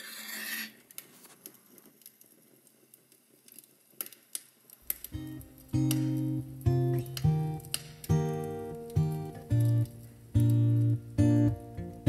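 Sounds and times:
faint clicks and rustles: 0:00.7 - 0:12.0
match flaring with a hiss: 0:03.5 - 0:11.4
acoustic guitar plucking: 0:04.9 - 0:12.0.

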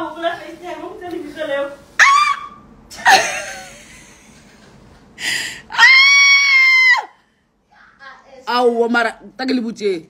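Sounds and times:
woman squealing: 0:02.0 - 0:03.3, 0:05.7 - 0:07.2.

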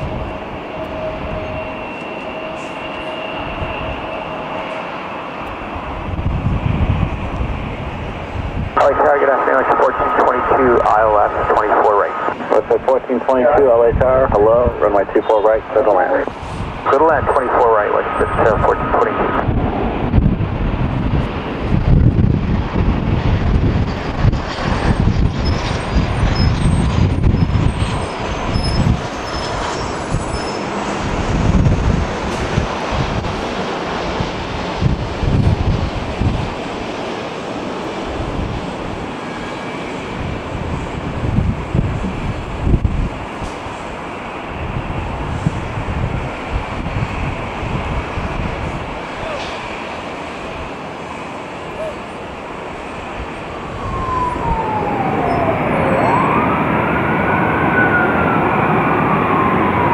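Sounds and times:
jet engines spooling up: 0:00.0 - 0:59.9
steady whistling tone: 0:00.8 - 0:05.4
air traffic control radio voice: 0:08.8 - 0:19.5, 0:49.2 - 0:49.6, 0:51.7 - 0:52.1.

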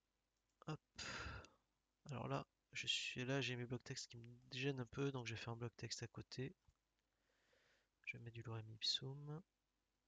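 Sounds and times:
breathy exhale: 0:01.0 - 0:01.4.

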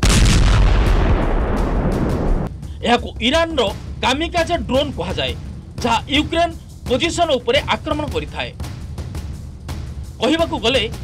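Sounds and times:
loud blast with rumbling roar: 0:00.0 - 0:02.5.

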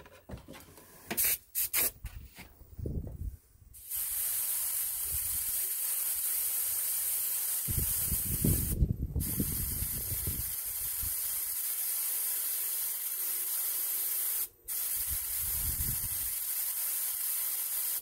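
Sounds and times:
airbrush spraying hiss: 0:03.7 - 0:18.0.

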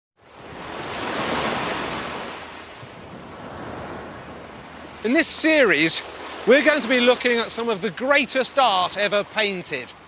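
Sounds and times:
rush of noise like surf: 0:00.2 - 0:10.0.

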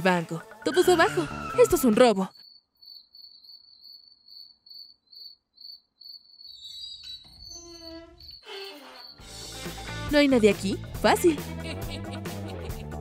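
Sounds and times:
crickets chirping: 0:02.3 - 0:09.2.

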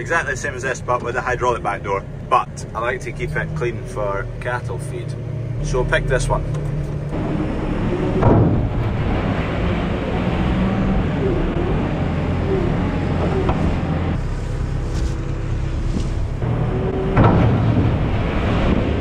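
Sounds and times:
tractor engine running: 0:00.0 - 0:19.0
thump: 0:08.2 - 0:08.7, 0:17.1 - 0:18.0
wet dung sliding from trailer: 0:13.6 - 0:19.0.

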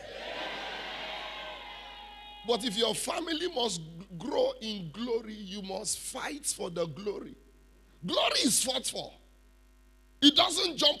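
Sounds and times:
congregation shouting and cheering: 0:00.0 - 0:03.0.

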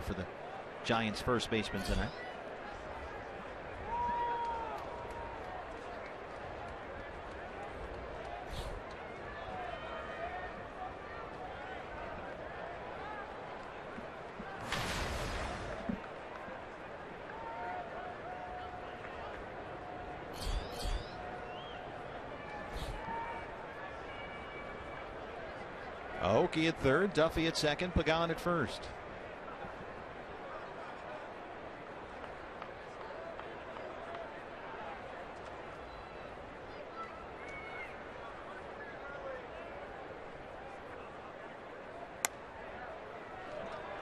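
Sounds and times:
crowd murmur: 0:01.7 - 0:26.1
shouts and calls from crowd: 0:02.2 - 0:08.3, 0:36.8 - 0:39.8
burst of crowd noise: 0:14.4 - 0:26.1.

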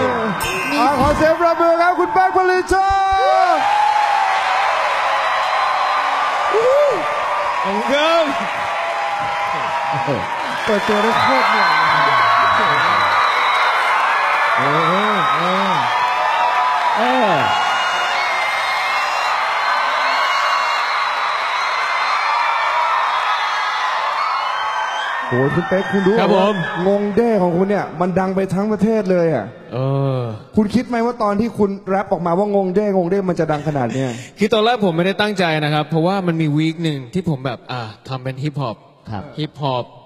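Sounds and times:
audience cheering and applauding: 0:00.0 - 0:27.6
person calling out: 0:14.6 - 0:15.9.

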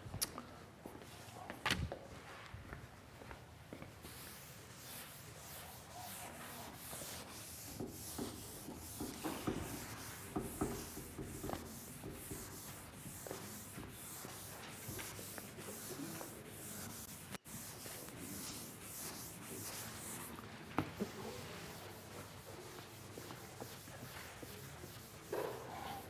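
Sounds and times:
eraser wiping chalkboard: 0:04.0 - 0:26.0.

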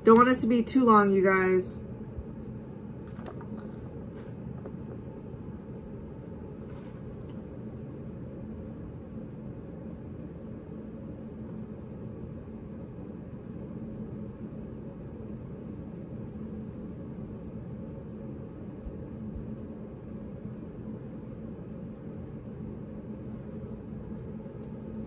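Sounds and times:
faint steady tone: 0:00.0 - 0:25.0
machinery hum and rumble: 0:00.0 - 0:25.0.

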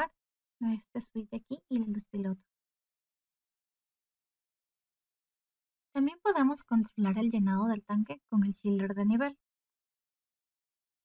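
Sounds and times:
woman's voice: 0:00.0 - 0:02.4, 0:06.0 - 0:09.4.

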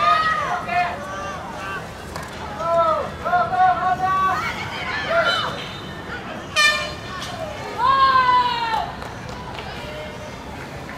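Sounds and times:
young voices shouting: 0:00.0 - 0:01.9, 0:02.6 - 0:05.6, 0:07.2 - 0:08.9.

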